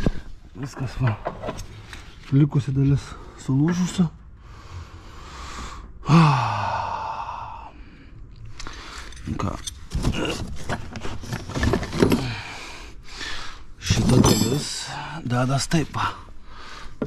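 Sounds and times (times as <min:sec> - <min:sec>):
man groaning sigh: 0:06.0 - 0:07.8.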